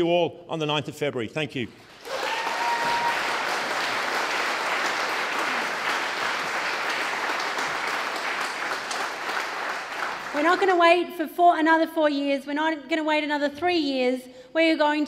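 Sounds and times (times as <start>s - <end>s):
audience applauding: 1.9s - 10.8s.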